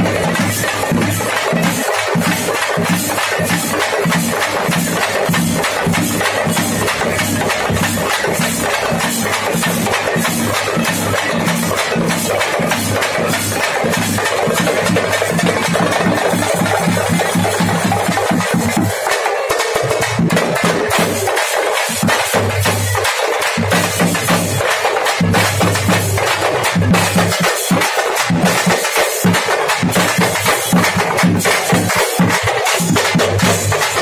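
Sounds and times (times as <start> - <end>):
marching drum band: 0.0 - 34.0.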